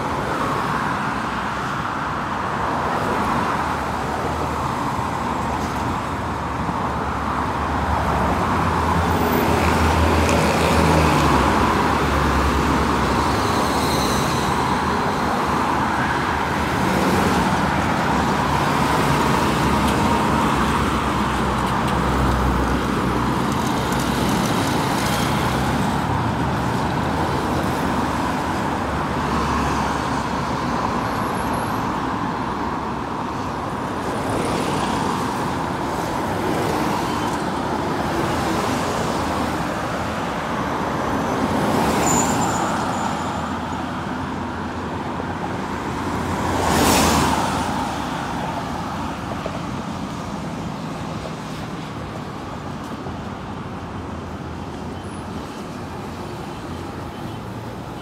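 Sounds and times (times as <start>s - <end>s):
engine rumble of traffic: 0.0s - 58.0s.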